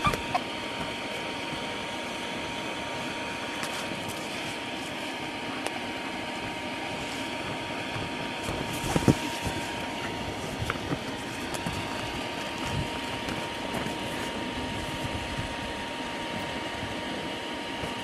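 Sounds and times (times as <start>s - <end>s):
electric air blower droning: 0.0s - 18.0s
thumps on inflated floor: 7.9s - 11.8s.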